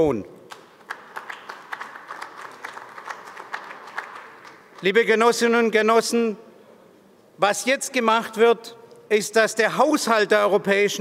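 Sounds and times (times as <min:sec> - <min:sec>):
audience applauding: 0:00.5 - 0:05.0.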